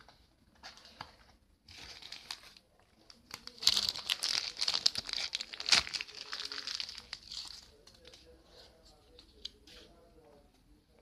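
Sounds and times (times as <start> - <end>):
plastic packet crinkling: 1.7 - 8.1.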